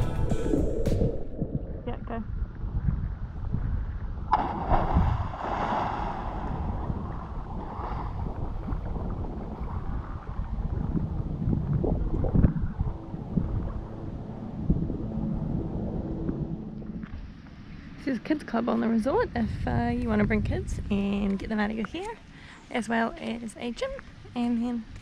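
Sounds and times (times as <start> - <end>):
wind buffeting microphone: 0.0 - 22.2
splash into water: 4.3 - 9.0.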